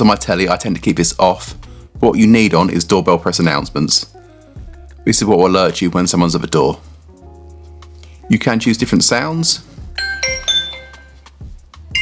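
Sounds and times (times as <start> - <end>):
electronic doorbell chime: 10.0 - 11.2.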